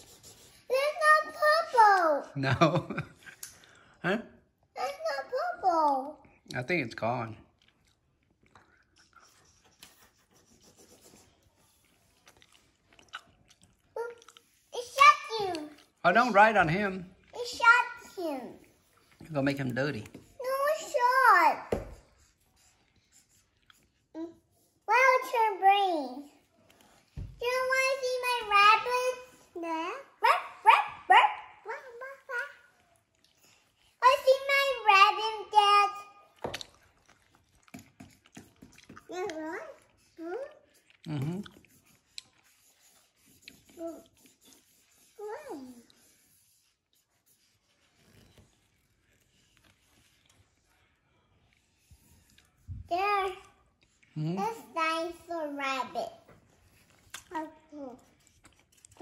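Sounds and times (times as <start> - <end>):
markers scratching on paper: 0.0 - 1.5, 9.1 - 11.9, 14.4 - 15.5, 19.6 - 25.6, 37.7 - 40.8, 41.4 - 50.6, 51.6 - 53.4.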